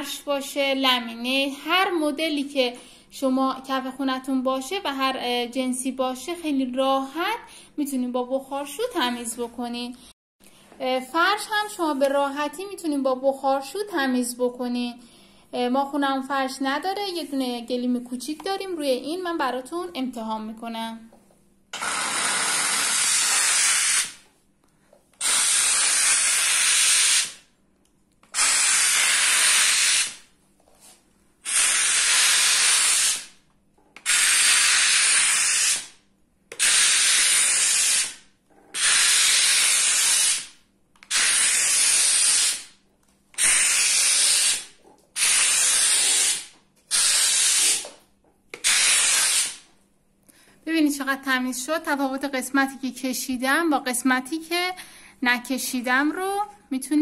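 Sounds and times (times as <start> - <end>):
steam cleaner hissing: 21.8 - 24.2, 25.2 - 27.4, 28.3 - 30.2, 31.4 - 33.3.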